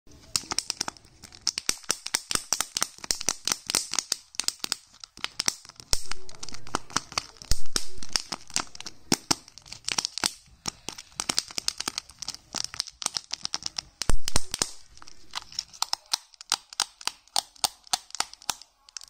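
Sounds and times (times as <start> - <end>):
plastic wrapper crinkling and tearing: 0.1 - 19.0.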